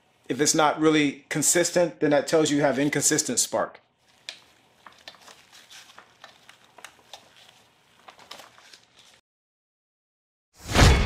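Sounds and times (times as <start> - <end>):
gloved hands handling plastic: 2.4 - 3.2, 4.0 - 9.2.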